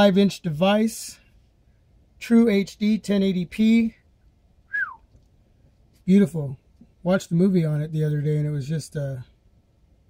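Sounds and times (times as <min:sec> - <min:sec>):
short falling whistle: 0:04.7 - 0:05.0.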